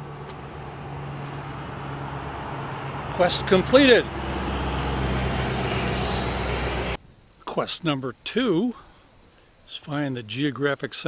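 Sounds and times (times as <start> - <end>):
street traffic rumble with hiss: 0.0 - 7.5.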